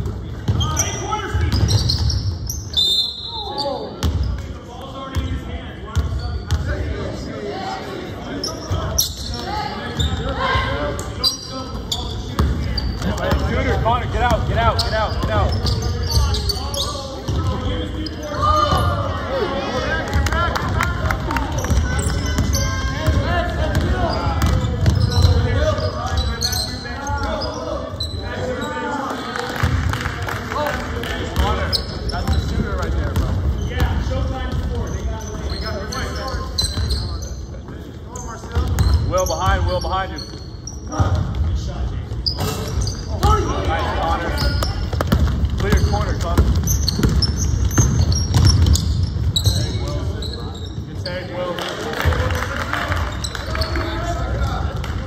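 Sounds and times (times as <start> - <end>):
sneakers squeaking on court: 0.0 - 6.9, 8.2 - 19.2, 21.5 - 29.0, 31.3 - 51.3, 52.1 - 54.9
basketball bouncing on wooden floor: 44.6 - 49.6.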